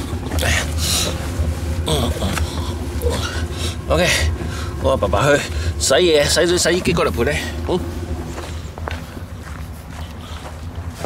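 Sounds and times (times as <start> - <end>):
footsteps on snow: 7.7 - 11.0.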